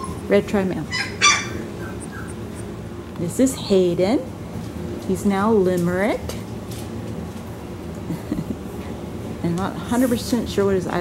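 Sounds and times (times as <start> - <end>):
puppy squealing: 0.0 - 0.3, 0.9 - 2.6
steady low hum: 0.0 - 11.0.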